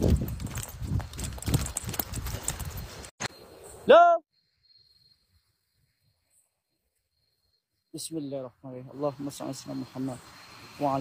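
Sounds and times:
hurried footsteps on forest floor: 0.0 - 3.1
leaves and twigs crackling: 0.0 - 3.1.

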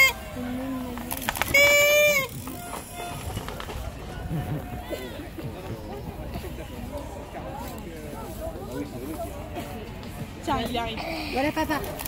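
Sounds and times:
faint scattered voices: 0.0 - 12.0.

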